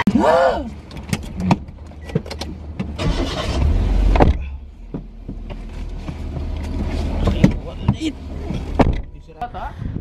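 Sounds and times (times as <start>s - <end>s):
vehicle low rumble: 0.0s - 10.0s
clicks and knocks in seats: 0.9s - 3.0s, 4.2s - 9.0s.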